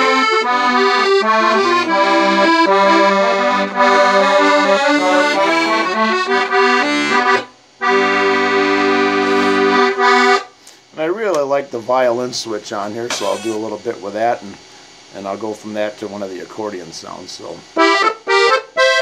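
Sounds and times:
piano accordion playing a tune: 0.0 - 10.5, 17.8 - 19.0.

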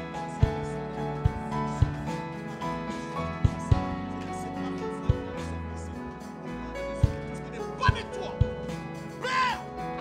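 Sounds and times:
soft keyboard chords: 0.0 - 10.0.

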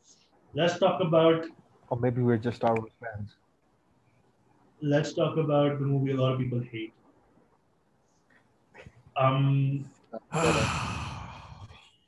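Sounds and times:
person sighing: 10.2 - 11.8.

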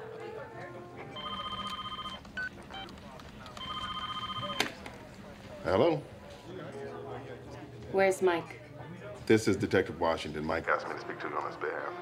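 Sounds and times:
phone ringing electronic trill: 1.2 - 2.2.

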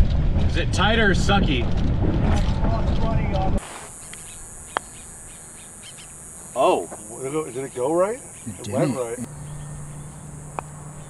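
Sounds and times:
wind buffeting microphone: 0.0 - 3.6
high-pitched insect drone: 3.6 - 11.0
faint voices: 6.6 - 9.3.

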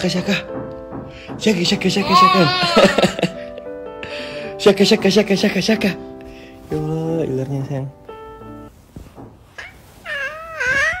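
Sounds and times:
baby squealing happily: 2.0 - 3.2, 9.6 - 11.0.

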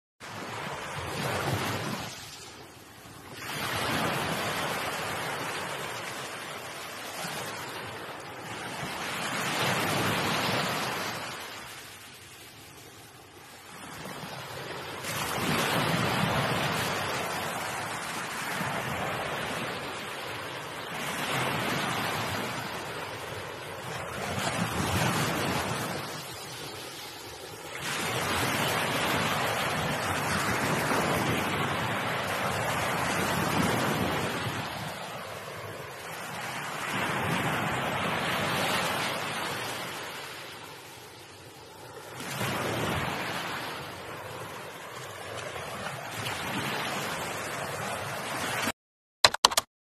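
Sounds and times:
sea waves breaking over rocks: 0.2 - 48.7.

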